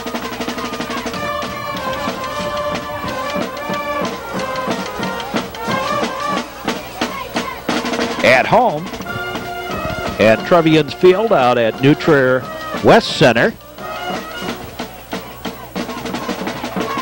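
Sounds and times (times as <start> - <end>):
band music with busy drums: 0.0 - 17.0.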